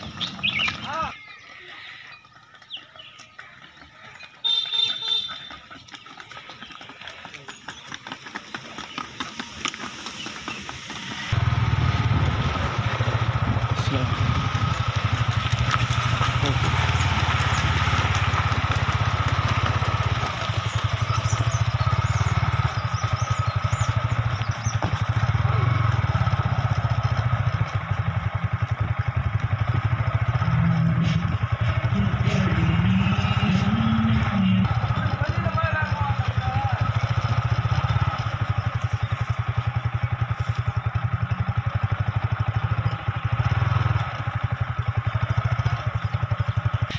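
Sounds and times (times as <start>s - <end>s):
motorcycle engine running: 0.0s - 46.9s.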